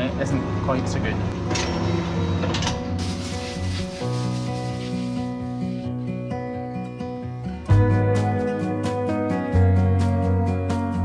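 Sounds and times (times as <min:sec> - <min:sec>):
soft guitar music: 0:00.0 - 0:11.0
hose nozzle spraying water: 0:02.9 - 0:05.9.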